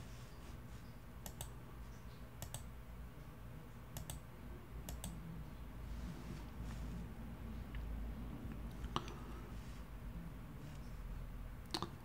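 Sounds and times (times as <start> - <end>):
faint computer mouse clicks: 1.2 - 1.5, 2.4 - 2.7, 4.0 - 4.2.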